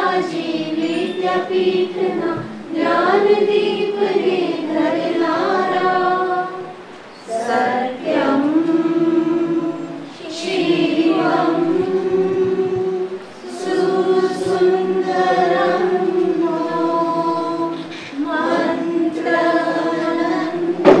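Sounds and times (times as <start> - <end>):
group singing long notes: 0.0 - 21.0.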